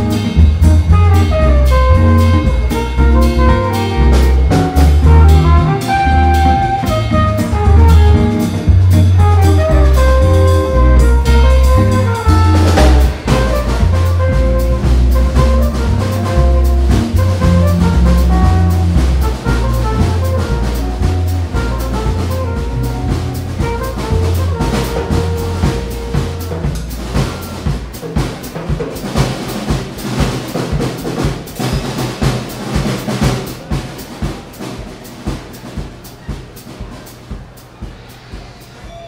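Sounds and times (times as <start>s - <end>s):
guitar melody: 0.0s - 27.4s
electric bass: 0.0s - 31.3s
drum kit with cymbals: 0.0s - 39.0s.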